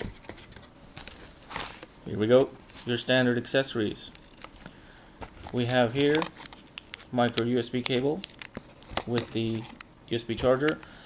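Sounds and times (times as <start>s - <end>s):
packaging rustle: 0.0s - 2.0s, 3.8s - 9.8s.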